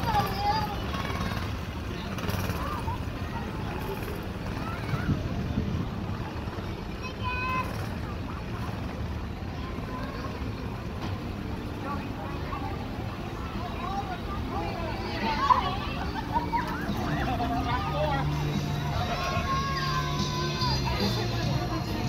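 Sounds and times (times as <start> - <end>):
onlookers' voices: 0.0 - 22.0
vehicle engine rumble: 0.0 - 22.0.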